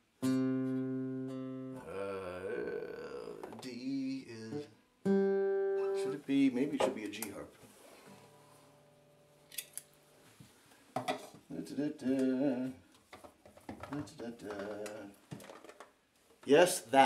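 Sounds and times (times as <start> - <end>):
acoustic guitar chord: 0.2 - 1.9, 4.5 - 6.3
man murmuring: 1.8 - 4.6.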